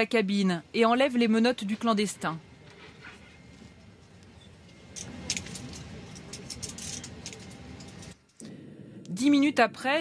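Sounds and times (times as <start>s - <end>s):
low background murmur: 0.0s - 10.0s
handcuffs clinking: 4.9s - 8.4s.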